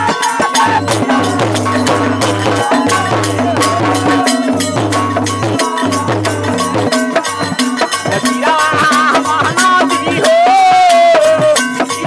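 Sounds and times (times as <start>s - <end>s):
folk music with percussion: 0.0s - 12.0s.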